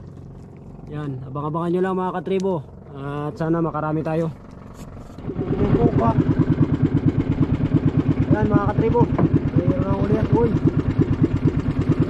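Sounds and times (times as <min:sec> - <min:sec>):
boat engine chugging: 0:00.0 - 0:12.0.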